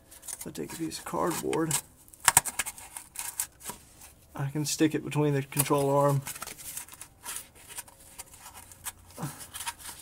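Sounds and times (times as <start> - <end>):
cardboard scraping and rustling: 0.2 - 4.2, 5.5 - 10.0.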